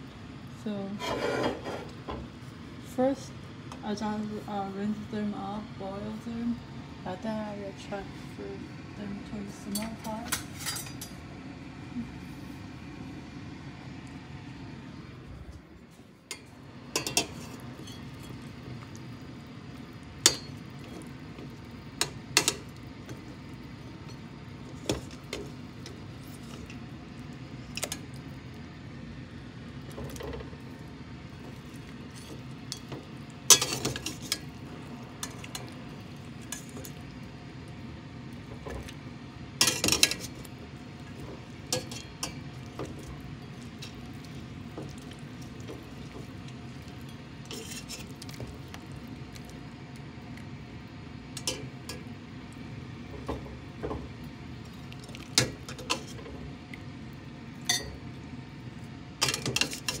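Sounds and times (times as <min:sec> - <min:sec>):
steady low hum: 0:00.0 - 1:00.0
metal skimmer clinking on pots: 0:09.7 - 0:11.1, 0:17.0 - 0:18.4, 0:33.5 - 0:34.4, 0:39.6 - 0:40.3, 0:57.7 - 0:58.0.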